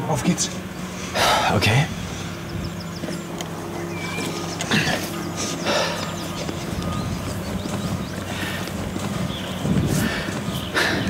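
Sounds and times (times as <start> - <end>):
low engine hum: 0.0 - 11.0
hurried footsteps: 2.0 - 11.0
rustling through brush: 2.2 - 11.0.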